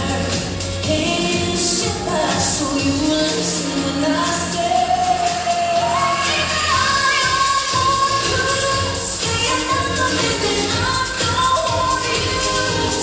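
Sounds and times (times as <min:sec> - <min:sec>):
cha cha dance music: 0:00.0 - 0:13.0.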